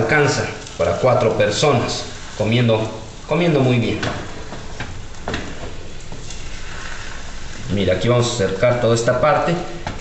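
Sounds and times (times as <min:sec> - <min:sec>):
food sizzling in oil: 0:00.0 - 0:09.9.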